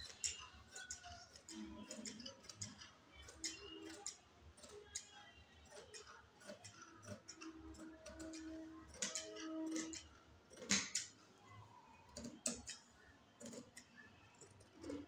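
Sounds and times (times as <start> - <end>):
scissors snipping fabric: 0.0 - 11.2, 12.1 - 15.0.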